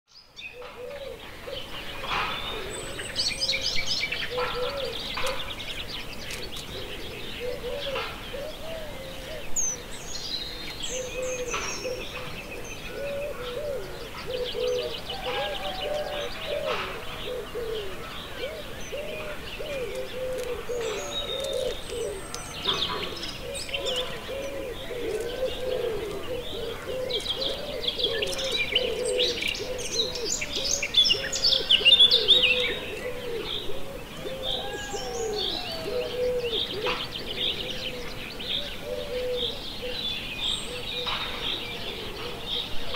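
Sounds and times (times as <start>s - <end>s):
low repeated cooing: 0.5s - 9.9s, 10.9s - 42.9s
other bird calls: 0.5s - 42.9s.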